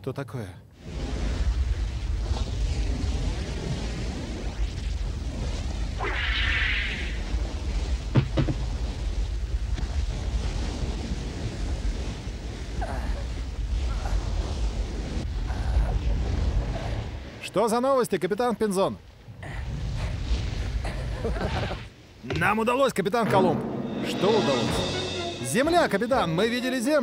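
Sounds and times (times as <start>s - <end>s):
low rumble of sea and wind: 0.0s - 27.0s.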